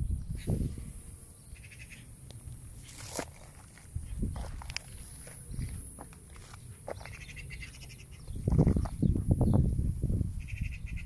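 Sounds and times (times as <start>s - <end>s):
footsteps crunching on dry grass: 2.7s - 9.2s.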